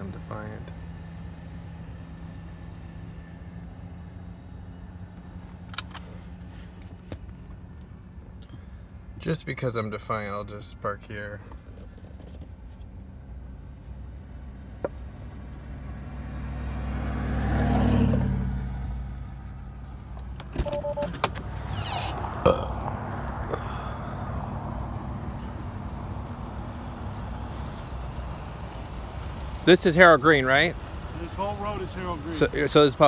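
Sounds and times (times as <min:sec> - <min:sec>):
vehicle engine rumble: 0:00.0 - 0:33.0
two-tone beep: 0:20.6 - 0:21.2.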